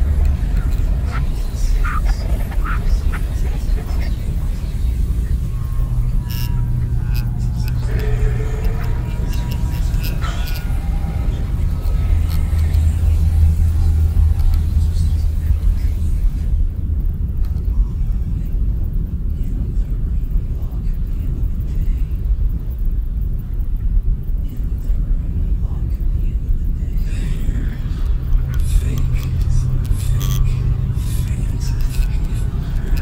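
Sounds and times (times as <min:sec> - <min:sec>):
deep hum: 0:00.0 - 0:33.0
low rumbling electronic drone: 0:00.0 - 0:33.0.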